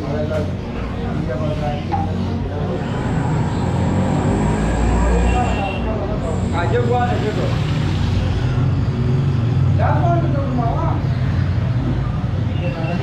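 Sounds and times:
people talking: 0.0s - 3.1s, 4.8s - 7.7s, 9.8s - 11.2s, 11.9s - 13.0s
traffic rumble: 0.0s - 13.0s.

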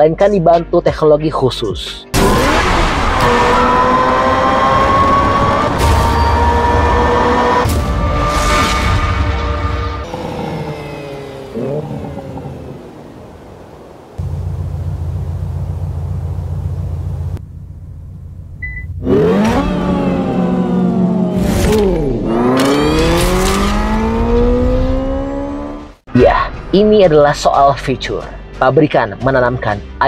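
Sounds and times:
synthesized racing engine sound: 2.2s - 17.4s
short beep: 5.9s - 6.7s, 18.6s - 19.0s.

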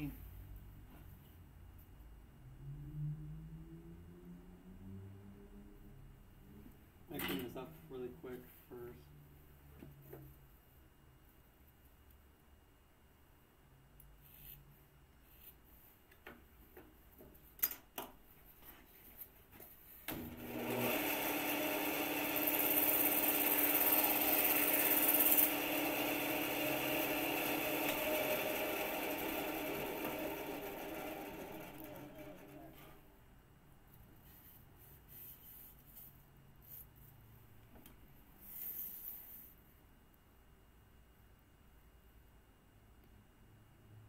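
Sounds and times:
electric power saw cutting: 20.1s - 32.8s.

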